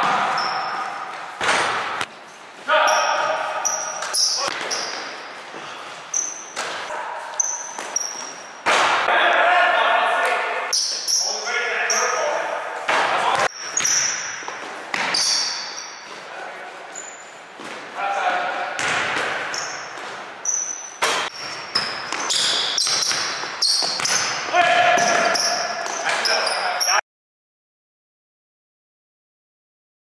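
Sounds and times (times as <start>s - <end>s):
sneakers squeaking on court: 0.0s - 9.0s, 13.2s - 17.9s, 18.7s - 27.0s
basketball bouncing on hardwood floor: 21.4s - 26.0s.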